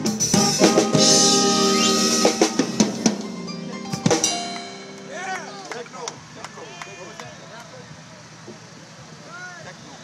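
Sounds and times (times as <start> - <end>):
distant chatter of voices: 3.5 - 10.0.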